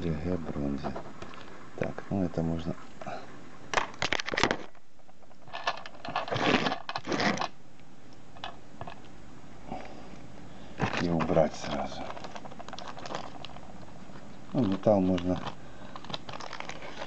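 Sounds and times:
metal parts rattling in plastic bowl: 0:05.4 - 0:07.0, 0:10.8 - 0:13.7, 0:14.5 - 0:17.0.

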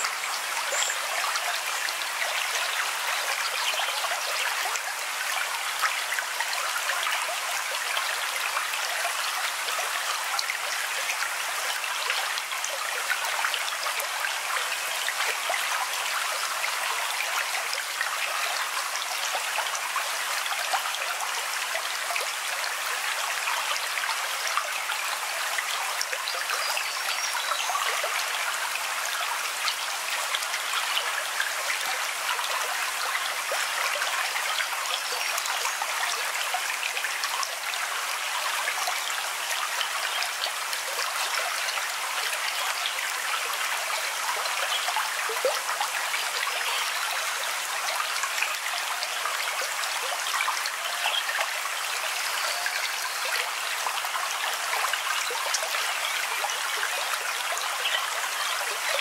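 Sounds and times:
babbling stream: 0:00.0 - 0:59.0.

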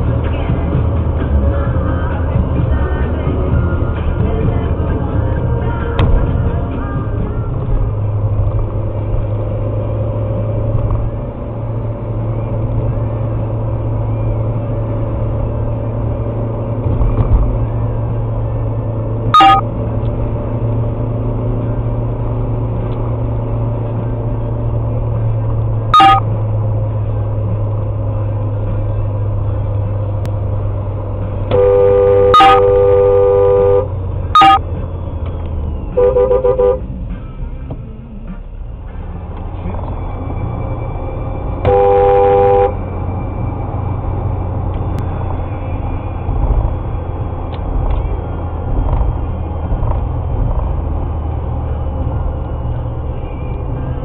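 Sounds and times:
engine and road noise: 0:00.0 - 0:54.0
car horns honking: 0:19.3 - 0:19.7, 0:25.9 - 0:26.3, 0:31.5 - 0:34.7, 0:36.0 - 0:37.0, 0:41.5 - 0:43.0.

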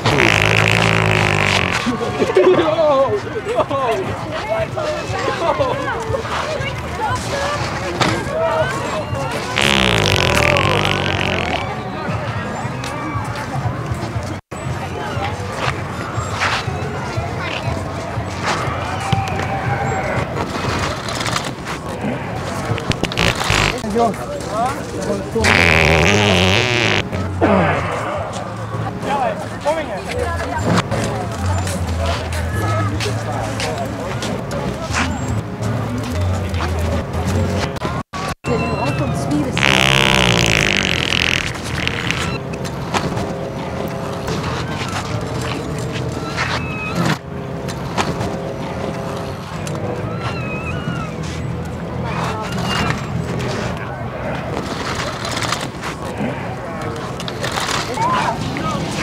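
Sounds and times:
wet fart noise: 0:00.0 - 0:02.0, 0:09.6 - 0:11.7, 0:22.9 - 0:23.8, 0:25.4 - 0:27.4, 0:39.6 - 0:42.4.

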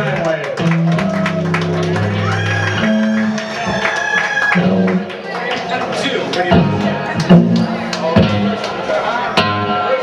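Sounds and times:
electric bass notes: 0:00.0 - 0:03.9, 0:04.5 - 0:05.2, 0:06.5 - 0:10.0
crowd chatter: 0:00.0 - 0:10.0.

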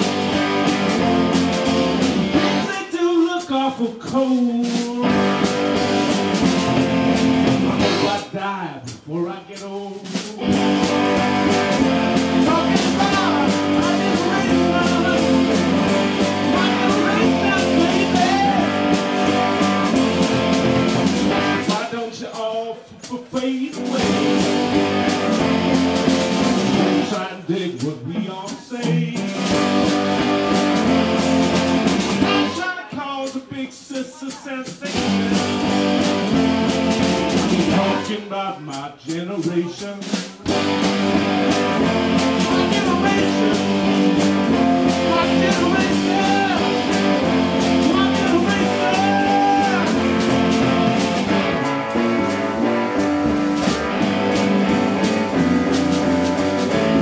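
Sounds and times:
electric guitars: 0:00.0 - 0:02.8, 0:05.0 - 0:08.4, 0:10.1 - 0:21.9, 0:23.8 - 0:27.2, 0:28.8 - 0:32.7, 0:34.9 - 0:38.1, 0:40.4 - 0:57.0
drum kit: 0:00.0 - 0:57.0.

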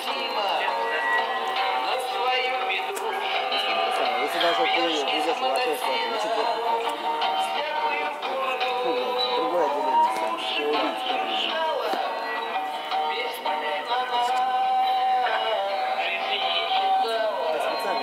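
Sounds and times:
person singing with instruments: 0:00.0 - 0:18.0.

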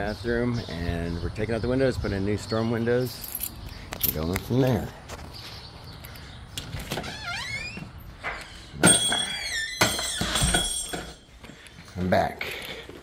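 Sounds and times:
door squeaking: 0:06.8 - 0:11.2.

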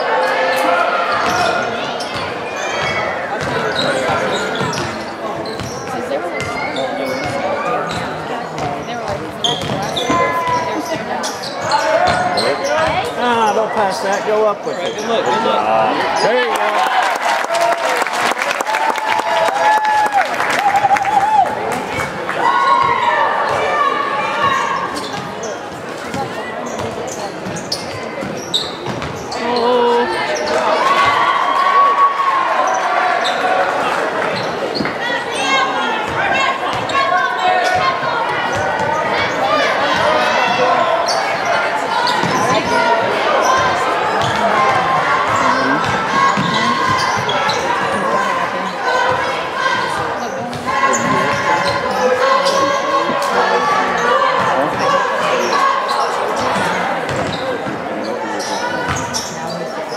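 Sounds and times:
shouting and chatter: 0:00.0 - 0:59.9.

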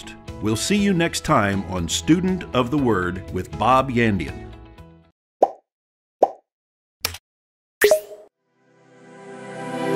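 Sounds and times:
pop sound effects: 0:05.4 - 0:05.6, 0:06.2 - 0:06.4, 0:07.8 - 0:08.3.

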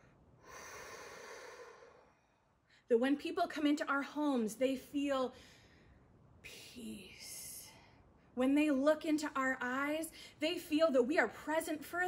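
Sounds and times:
woman breathing in through mouth: 0:00.4 - 0:02.2.

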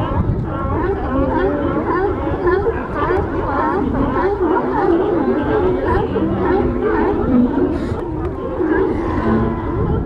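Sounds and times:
sea lions barking: 0:00.0 - 0:10.0.

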